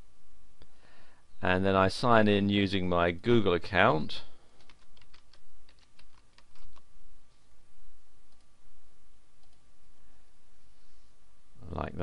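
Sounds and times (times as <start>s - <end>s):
computer keyboard typing: 4.6s - 6.8s.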